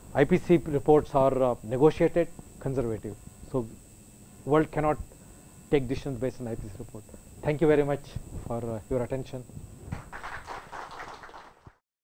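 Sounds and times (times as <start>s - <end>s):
audience applauding: 9.9s - 11.8s.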